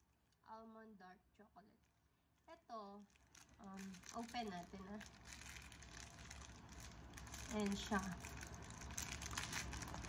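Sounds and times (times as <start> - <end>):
plastic wrapper crinkling: 1.8 - 10.0.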